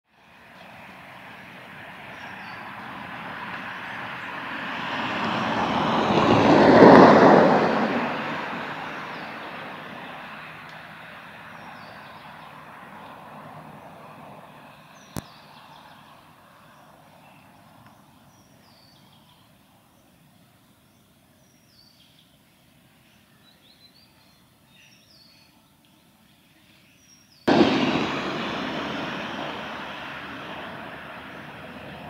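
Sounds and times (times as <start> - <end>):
aircraft passing over: 0.2 - 17.8, 27.5 - 32.0.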